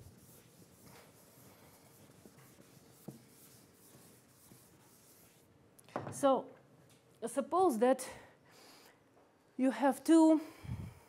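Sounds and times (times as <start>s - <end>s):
eraser rubbing chalkboard: 0.0s - 5.5s.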